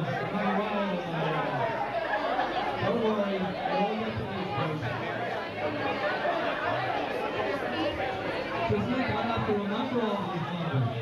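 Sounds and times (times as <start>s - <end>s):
crowd conversational babble: 0.0s - 11.0s.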